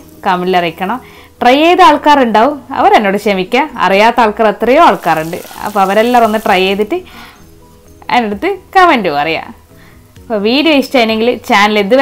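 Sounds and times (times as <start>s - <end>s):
food sizzling in oil: 0.0s - 12.0s.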